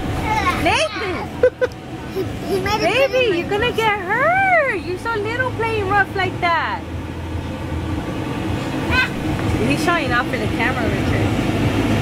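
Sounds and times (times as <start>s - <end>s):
electric blower rumbling: 0.0s - 12.0s.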